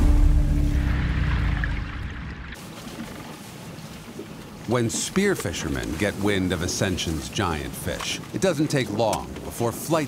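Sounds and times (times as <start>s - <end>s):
water hissing around boat: 2.5s - 10.0s.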